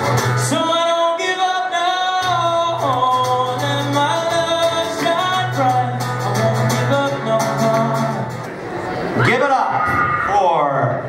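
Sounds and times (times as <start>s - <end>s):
man singing: 0.0s - 8.4s
acoustic guitar: 0.0s - 10.1s.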